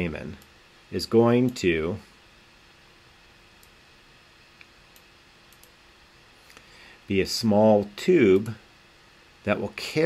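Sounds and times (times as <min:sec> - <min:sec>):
computer mouse clicks: 0:04.6 - 0:05.8.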